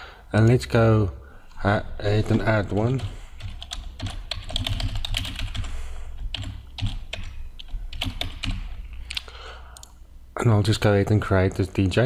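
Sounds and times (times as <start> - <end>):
typing on computer keyboard: 2.3 - 8.8.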